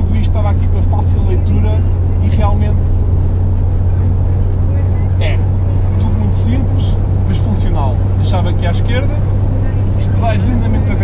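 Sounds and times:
car engine drone from cabin: 0:00.0 - 0:11.0.

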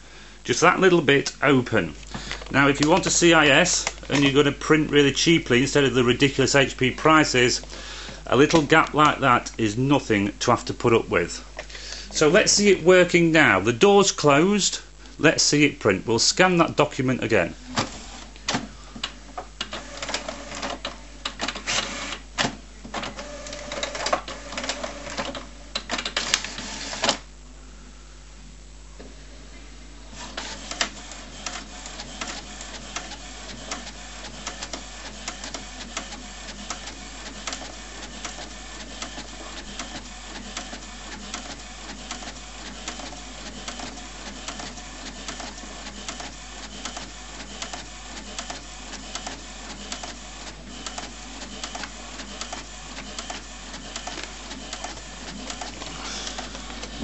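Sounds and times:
printer humming: 0:00.0 - 0:27.3, 0:29.9 - 0:57.0
rapid printer ticking: 0:02.3 - 0:07.3, 0:08.3 - 0:09.5, 0:19.6 - 0:27.2, 0:30.2 - 0:57.0
printer mechanism clatter: 0:03.8 - 0:04.5, 0:30.2 - 0:57.0.

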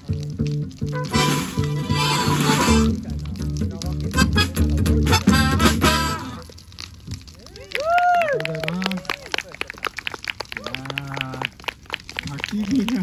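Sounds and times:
band playing a tune: 0:00.0 - 0:06.5.

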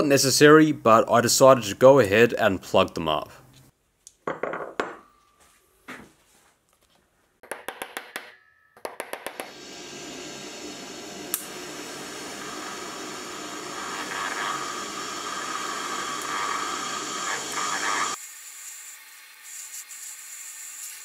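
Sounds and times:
hammer tapping on steel: 0:07.4 - 0:09.5
welding arc hissing: 0:09.5 - 0:21.0.

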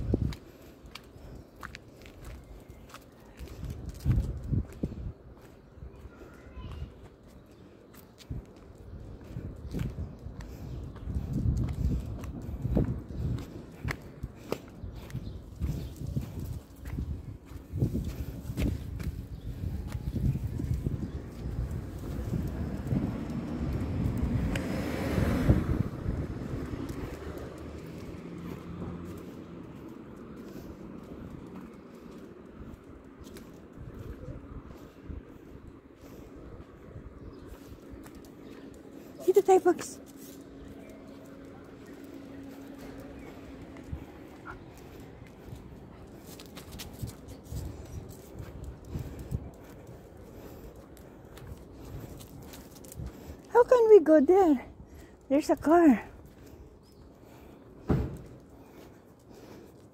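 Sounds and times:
footsteps on paving: 0:00.0 - 0:59.9.

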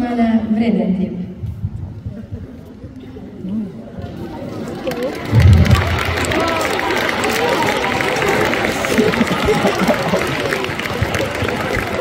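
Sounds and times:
murmur of voices in hall: 0:00.0 - 0:12.0
low thumps: 0:05.3 - 0:06.6.

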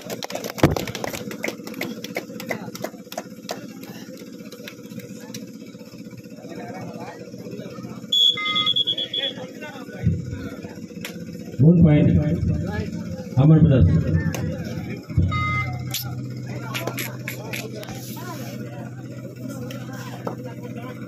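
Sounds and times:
crowd voices: 0:00.0 - 0:21.0
shrill whistle trill: 0:08.1 - 0:09.5, 0:15.2 - 0:16.1.

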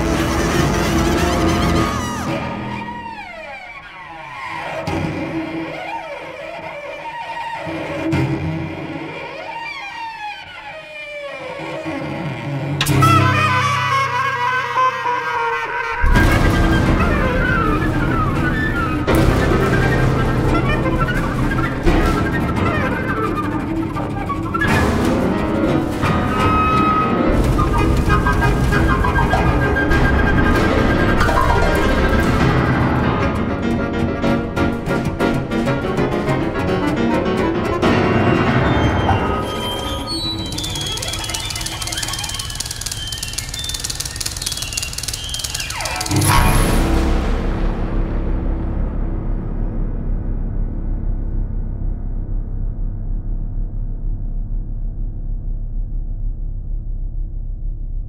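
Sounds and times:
dense rapid crackle: 0:16.0 - 0:37.0, 0:39.6 - 0:46.7
amplified chamber ensemble playing: 0:16.2 - 0:40.0
high squealing sliding tone: 0:38.7 - 0:46.4.

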